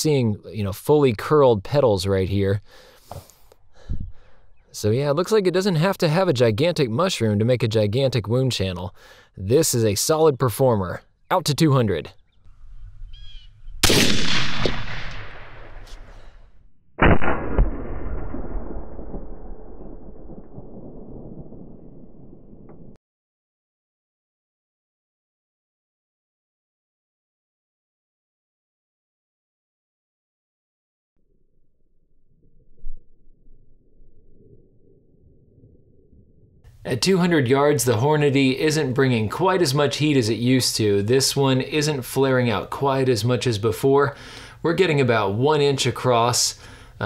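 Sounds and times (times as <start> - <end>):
rifle shot echoing: 13.8 - 16.3, 17.0 - 23.0
loud low thump: 17.0 - 23.0
deep muffled rumbling: 18.0 - 23.0.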